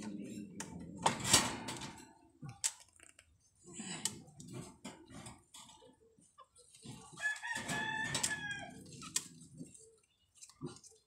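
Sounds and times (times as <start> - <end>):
rooster crowing: 7.2 - 8.8.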